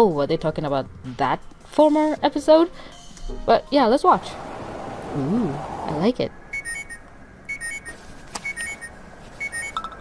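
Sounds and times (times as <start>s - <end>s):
phone alarm beeps: 6.5s - 9.9s.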